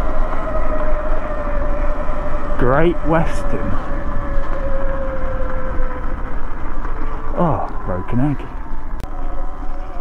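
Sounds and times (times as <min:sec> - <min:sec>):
rolling rumble: 0:00.0 - 0:10.0
wind buffeting: 0:00.0 - 0:10.0
person speaking: 0:07.4 - 0:08.6.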